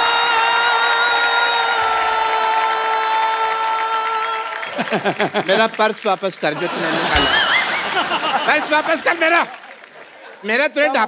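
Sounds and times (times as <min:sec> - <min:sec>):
audience clapping: 0:00.8 - 0:11.0.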